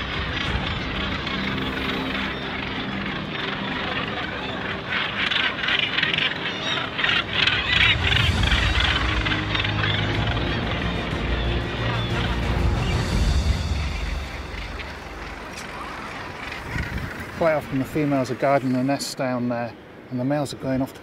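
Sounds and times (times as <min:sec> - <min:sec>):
soft background music: 0:00.0 - 0:18.6
gannets calling harshly: 0:00.0 - 0:19.0.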